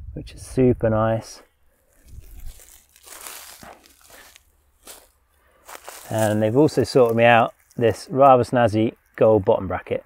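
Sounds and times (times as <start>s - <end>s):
leaves crunching underfoot: 1.8s - 8.2s.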